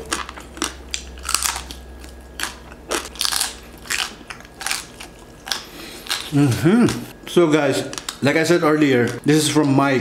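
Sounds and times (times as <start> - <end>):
chewing crispy pork skin: 0.0 - 7.1.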